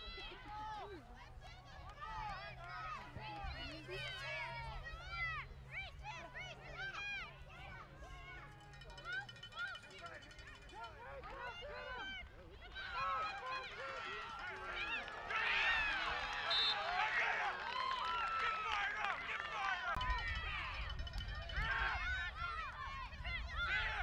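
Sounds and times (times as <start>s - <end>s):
crowd shouting and cheering: 0.0s - 24.0s.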